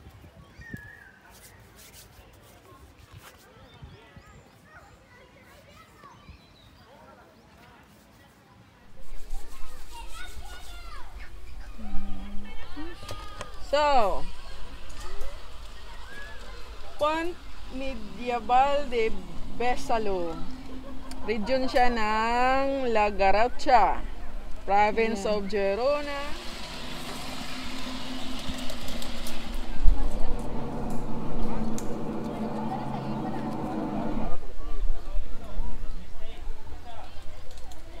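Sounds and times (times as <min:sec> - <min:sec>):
children calling and playing: 0:00.0 - 0:38.0
steady low rumble: 0:11.3 - 0:35.0
electric motor humming: 0:11.7 - 0:34.4
wheels clicking on rails: 0:12.7 - 0:34.4.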